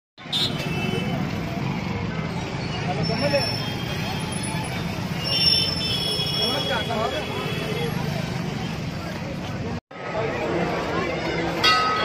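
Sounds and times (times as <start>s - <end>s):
crowd voices: 0.2s - 12.0s
motorbikes and cars passing: 0.2s - 12.0s.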